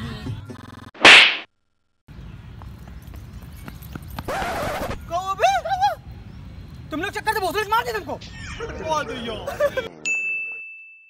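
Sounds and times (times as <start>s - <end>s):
sharp slap across face: 1.0s - 1.5s.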